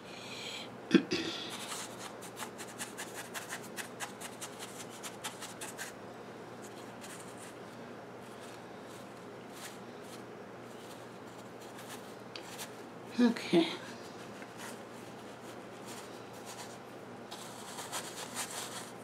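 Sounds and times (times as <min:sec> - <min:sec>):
soft rustling: 0:06.6 - 0:12.9, 0:13.8 - 0:19.0.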